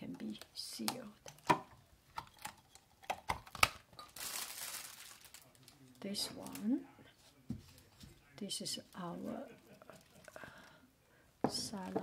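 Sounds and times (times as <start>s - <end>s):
silicone lid crinkling rustle: 2.1s - 6.6s.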